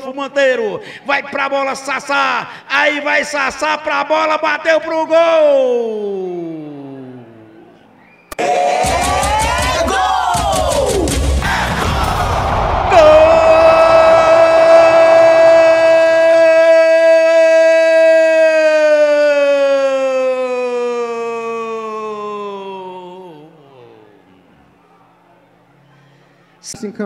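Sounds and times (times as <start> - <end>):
crowd noise: 6.4 - 26.6
excited yelling: 8.4 - 23.5.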